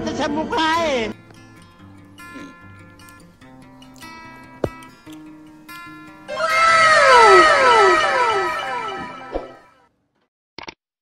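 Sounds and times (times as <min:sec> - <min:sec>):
background music: 0:00.0 - 0:09.7
loud falling cry with echoes: 0:06.3 - 0:09.6.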